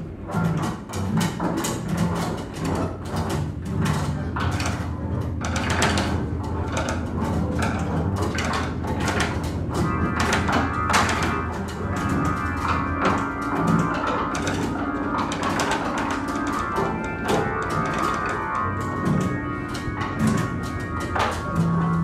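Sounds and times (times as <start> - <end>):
low string drone: 0.0 - 22.0
plucked and struck strings: 0.0 - 22.0.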